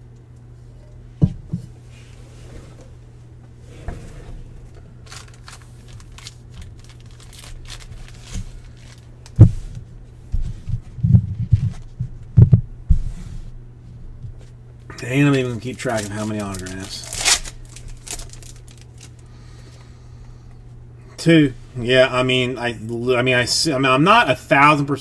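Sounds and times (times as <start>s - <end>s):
steady low hum: 0.0s - 25.0s
cards clicking and rustling: 5.0s - 9.4s, 15.2s - 19.8s.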